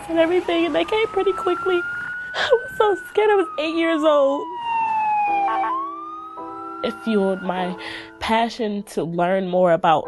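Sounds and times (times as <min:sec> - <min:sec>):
emergency vehicle siren wailing: 0:00.0 - 0:08.2.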